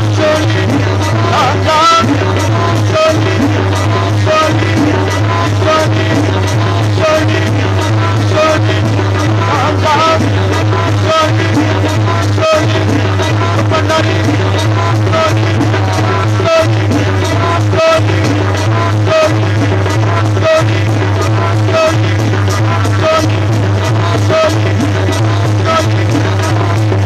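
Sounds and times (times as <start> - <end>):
tabla: 0.0 - 27.0.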